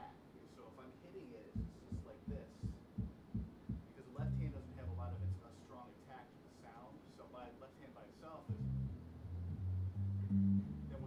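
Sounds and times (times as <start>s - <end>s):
bass plucking low notes: 4.2s - 5.4s, 8.5s - 11.0s.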